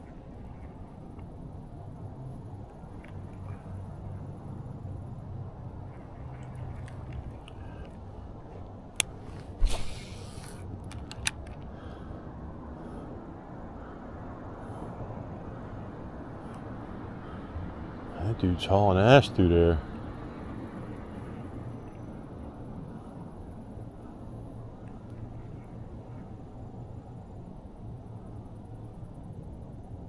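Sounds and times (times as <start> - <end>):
low outdoor hum: 0.0 - 30.0
short rustle: 8.5 - 10.6.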